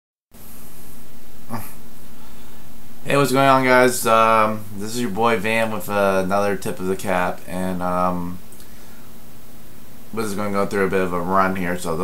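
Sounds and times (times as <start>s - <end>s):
microphone hiss: 0.3s - 12.0s
faint steady hum: 0.4s - 12.0s.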